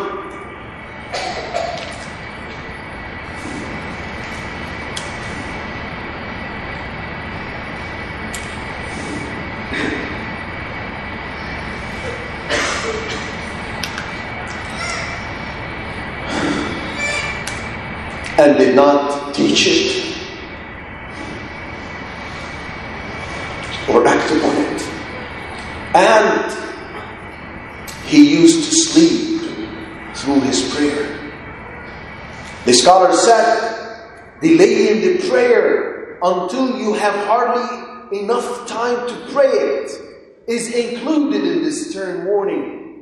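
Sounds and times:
rushing background noise: 0.0s - 37.3s
faint high whine: 0.0s - 43.0s
man speaking: 18.3s - 20.3s, 23.8s - 25.1s, 25.9s - 26.9s, 28.0s - 31.3s, 32.6s - 33.8s, 34.4s - 42.8s.

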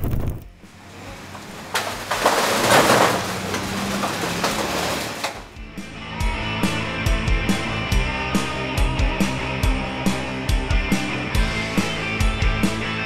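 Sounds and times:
guitar music: 5.5s - 13.0s.

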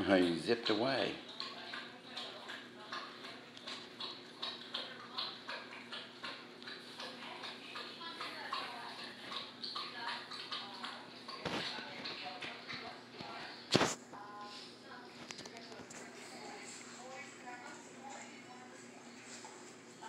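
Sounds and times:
dog panting: 0.0s - 13.6s.

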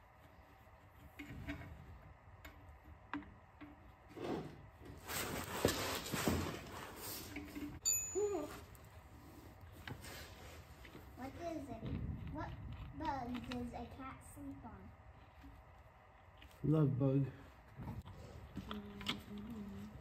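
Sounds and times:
rustling: 4.0s - 16.6s
metal clink with ringing tone: 7.8s - 8.6s.

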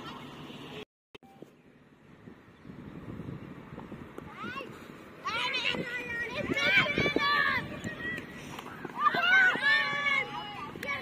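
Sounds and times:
outdoor background din: 0.0s - 11.0s.

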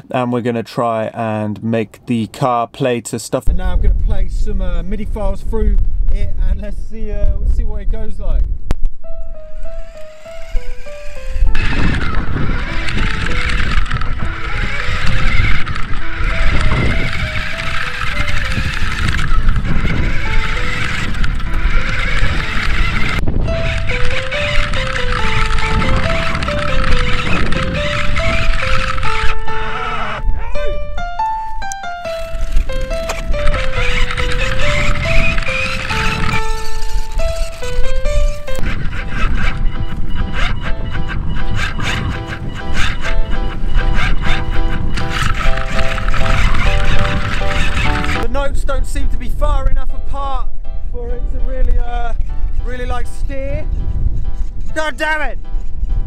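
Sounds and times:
low wind rumble: 3.4s - 56.0s
synthesizer melody: 9.0s - 48.6s
electric motor whirring: 9.4s - 30.3s, 31.2s - 48.5s
tyres on gravel: 9.9s - 30.1s, 31.2s - 40.8s, 41.8s - 48.5s.

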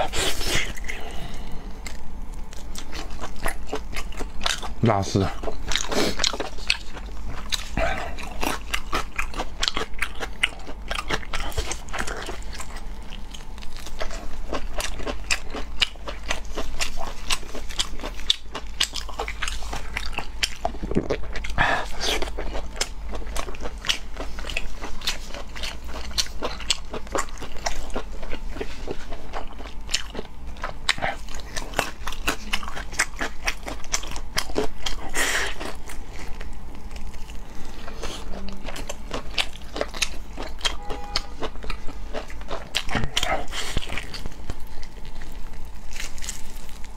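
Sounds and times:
person chewing food: 0.0s - 46.9s.

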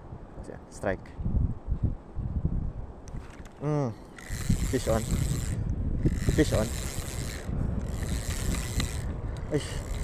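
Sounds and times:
fishing reel whirring: 4.1s - 10.0s.

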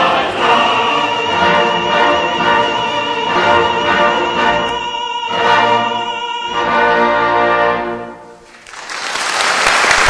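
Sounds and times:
operatic chorus and orchestra: 0.0s - 8.4s.

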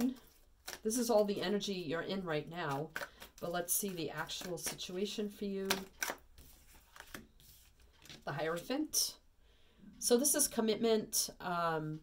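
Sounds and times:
cards rustling softly: 0.0s - 8.6s.

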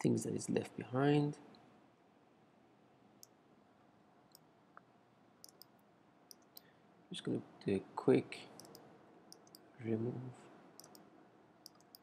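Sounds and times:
faint computer mouse clicks: 4.3s - 6.7s, 8.6s - 9.6s, 10.8s - 11.0s, 11.6s - 12.0s.

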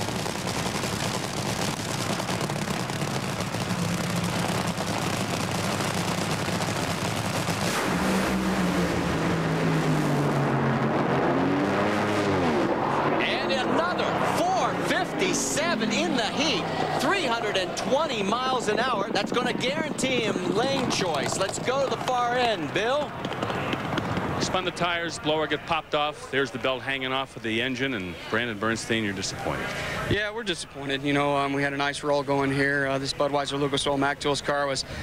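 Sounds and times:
dragsters launching at full throttle: 0.0s - 25.9s
dragster engines crackling: 0.0s - 34.5s.

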